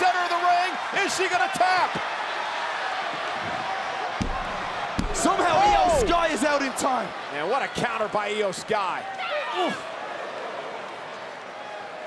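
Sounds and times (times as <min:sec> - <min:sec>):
large crowd cheering: 0:00.0 - 0:12.0.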